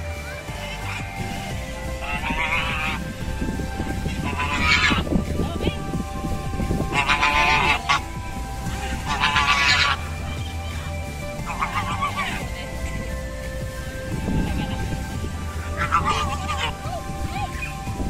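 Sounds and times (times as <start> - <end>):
geese honking: 0.0 - 18.0.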